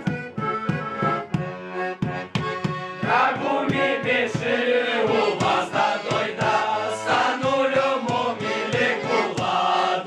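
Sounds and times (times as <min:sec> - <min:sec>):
piano accordion: 0:00.0 - 0:10.0
group of men singing a carol: 0:03.0 - 0:10.0.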